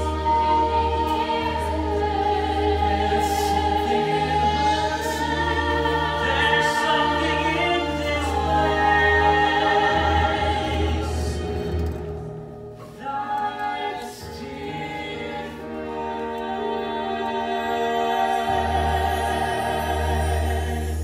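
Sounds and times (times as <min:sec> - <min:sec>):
cast singing in chorus: 0:00.0 - 0:12.0
instrumental accompaniment with bass: 0:00.0 - 0:21.0.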